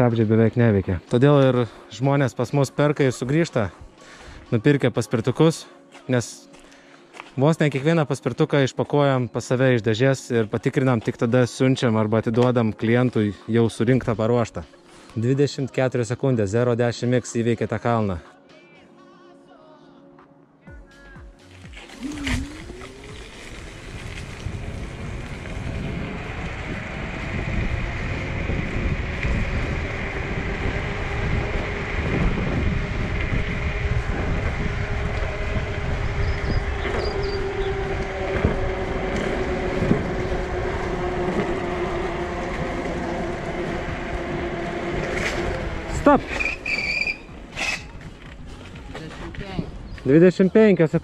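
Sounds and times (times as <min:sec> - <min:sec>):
road noise: 0:00.0 - 0:18.2, 0:21.4 - 0:51.0
electric scooter motors whining: 0:21.5 - 0:50.2
rushing wind: 0:21.9 - 0:50.1.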